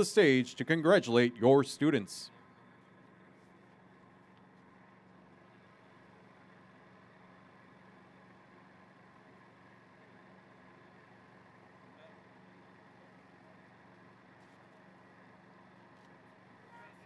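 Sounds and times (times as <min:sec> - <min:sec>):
faint low outdoor hum: 0:00.0 - 0:17.0.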